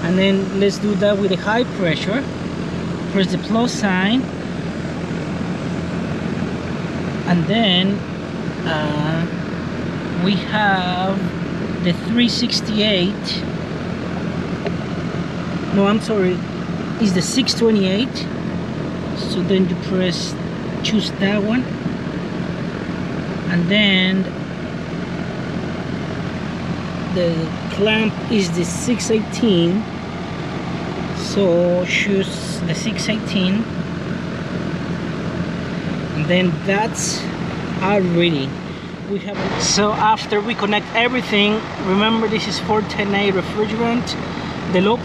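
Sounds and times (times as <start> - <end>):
air conditioner unit droning: 0.0 - 45.0.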